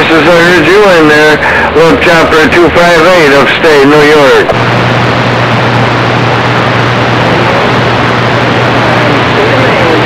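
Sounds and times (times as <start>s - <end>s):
low hum: 0.0s - 10.0s
radio static: 0.0s - 10.0s.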